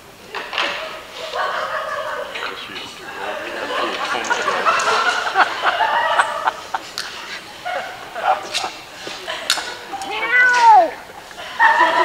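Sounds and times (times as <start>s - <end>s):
drawn-out meow-like cry: 10.0s - 10.9s.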